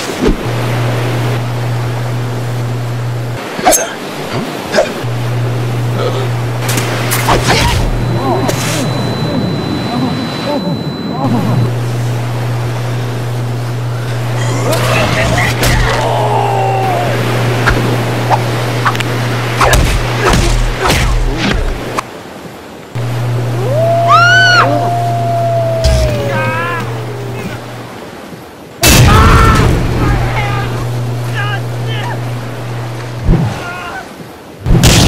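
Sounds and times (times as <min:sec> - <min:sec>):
low drone: 0:04.7 - 0:21.9, 0:23.0 - 0:28.0
shouts and grunts: 0:14.9 - 0:17.2, 0:23.6 - 0:27.6.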